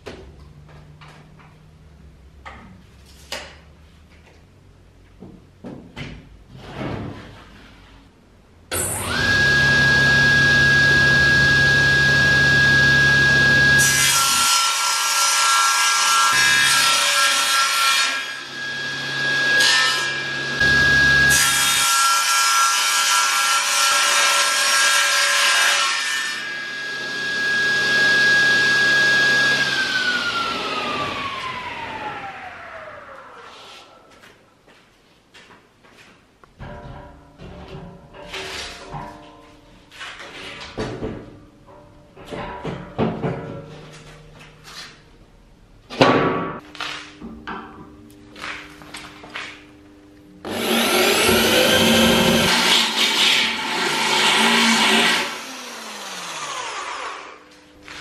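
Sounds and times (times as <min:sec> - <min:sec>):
table saw whine: 0:08.7 - 0:14.6, 0:16.1 - 0:23.7, 0:25.5 - 0:34.0, 0:50.4 - 0:58.0
saw blade cutting board: 0:50.4 - 0:58.0
saw blade spinning down: 0:50.5 - 0:57.4.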